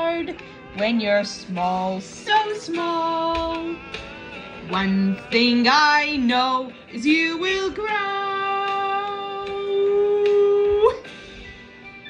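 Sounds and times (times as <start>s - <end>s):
musical accompaniment: 0.0s - 12.0s.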